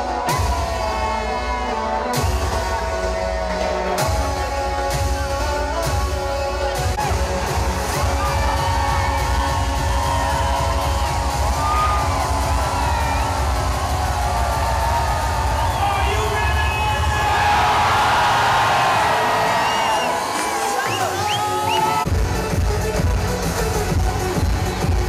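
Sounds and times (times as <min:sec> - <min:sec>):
live concert music with bass beat: 0:00.0 - 0:25.0
crowd cheering: 0:07.0 - 0:22.1.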